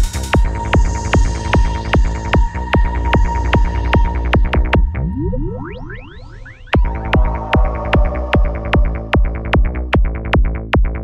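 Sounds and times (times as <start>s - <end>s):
rolling bassline: 0.0s - 11.0s
rising synth sweeps: 0.4s - 10.0s
held synth tone: 0.5s - 9.9s
kick drum: 6.8s - 11.0s.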